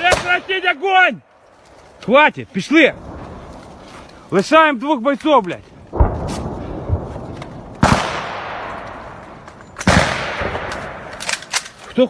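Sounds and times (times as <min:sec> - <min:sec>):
gunshots echoing: 0:00.0 - 0:00.8, 0:05.9 - 0:11.8.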